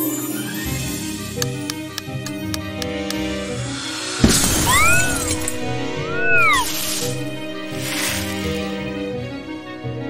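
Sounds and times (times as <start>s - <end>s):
background music: 0.0s - 10.0s
cartoon crash with shattering: 4.2s - 5.6s
swooping tones: 4.7s - 7.4s.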